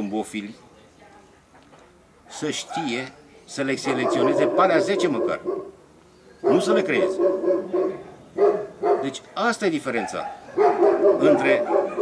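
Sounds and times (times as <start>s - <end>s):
dog barking: 2.6s - 3.1s, 3.8s - 5.8s, 6.4s - 9.2s, 10.0s - 12.0s.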